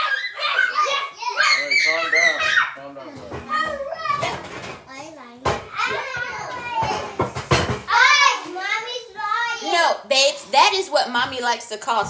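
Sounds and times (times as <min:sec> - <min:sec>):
children chattering and calling out: 0:00.0 - 0:11.0
sharp knocks: 0:05.4 - 0:07.9.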